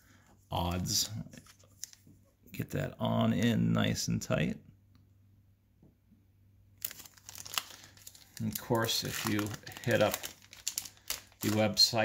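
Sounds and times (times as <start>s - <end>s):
foil wrapper crinkling: 6.8s - 12.0s.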